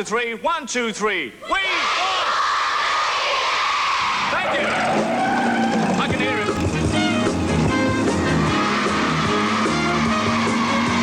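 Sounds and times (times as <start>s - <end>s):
studio audience noise: 1.5s - 11.0s.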